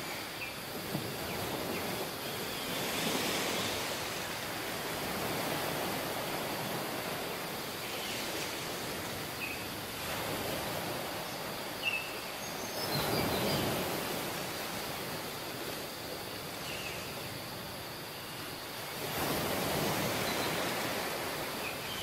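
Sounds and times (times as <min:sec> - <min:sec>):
waves washing up beach: 0:00.0 - 0:22.0.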